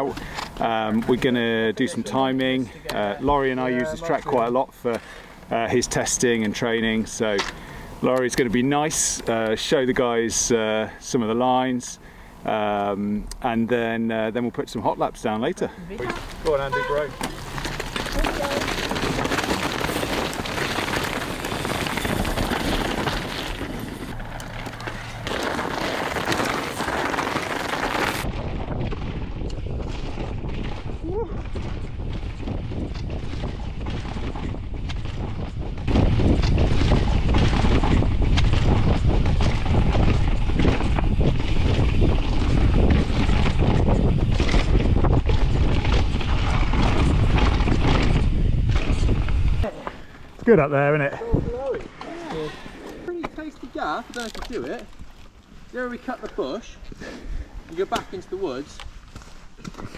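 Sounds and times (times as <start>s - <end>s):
bike rattle and tyre noise: 0.0s - 59.9s
wind buffeting microphone: 28.2s - 49.8s, 51.1s - 51.9s.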